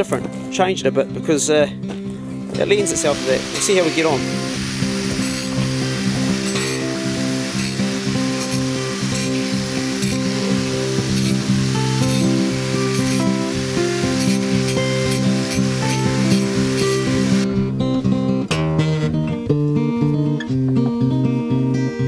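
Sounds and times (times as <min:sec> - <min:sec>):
background music: 0:00.0 - 0:22.0
angle grinder grinding metal: 0:02.4 - 0:17.5.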